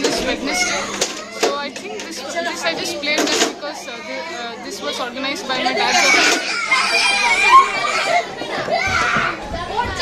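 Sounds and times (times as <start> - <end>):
children chattering and calling out: 0.0 - 10.0
child shouting: 5.9 - 9.3.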